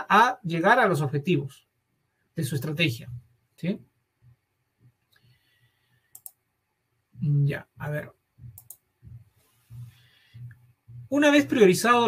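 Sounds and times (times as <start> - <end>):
computer input clicks: 6.1 - 6.4, 8.6 - 8.8.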